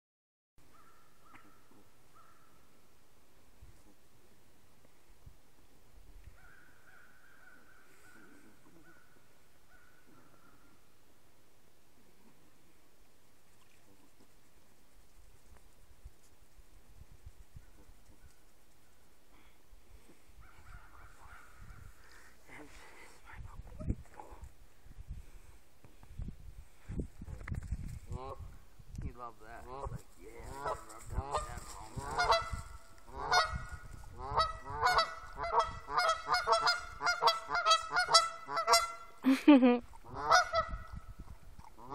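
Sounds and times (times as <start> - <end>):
geese calling: 30.5 - 39.2
geese honking: 30.5 - 39.2, 40.1 - 40.8.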